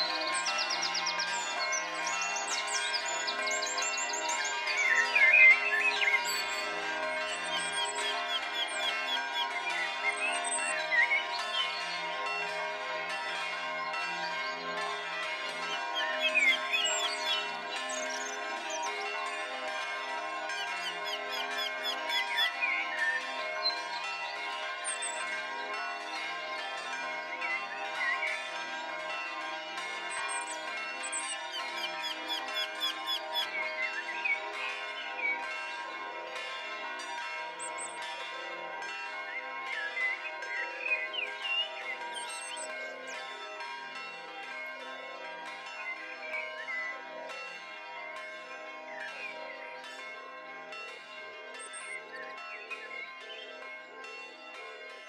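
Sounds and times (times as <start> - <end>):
church bells pealing: 0.0 - 55.0.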